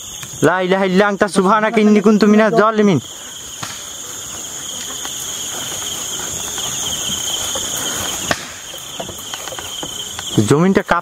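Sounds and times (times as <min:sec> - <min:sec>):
crickets trilling: 0:00.0 - 0:11.0
footsteps through tall grass: 0:03.9 - 0:10.4.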